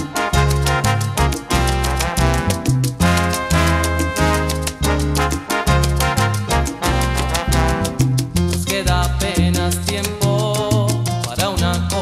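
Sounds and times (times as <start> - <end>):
sustained melody line: 0.0 - 8.4
bass line: 0.0 - 12.0
quick percussion beat: 0.0 - 12.0.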